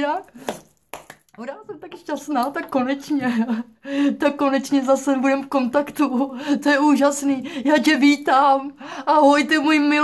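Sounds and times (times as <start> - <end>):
woman speaking: 0.0 - 0.4, 1.3 - 10.0.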